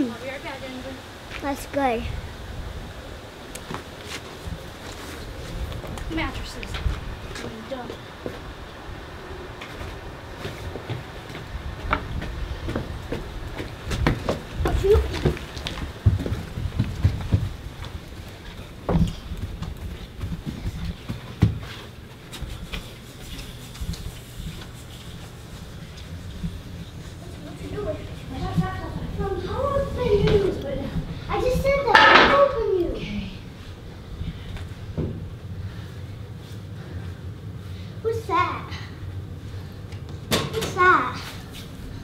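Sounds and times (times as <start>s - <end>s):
footsteps on stairs: 9.6s - 31.8s, 34.1s - 36.9s
mattress bumping on stairs: 11.8s - 17.7s.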